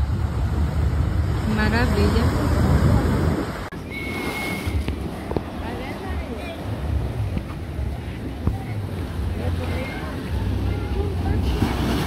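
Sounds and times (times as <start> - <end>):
wind on microphone: 0.0 - 5.8
ocean surf breaking: 0.0 - 12.0
surf foaming between concrete blocks: 0.1 - 12.0.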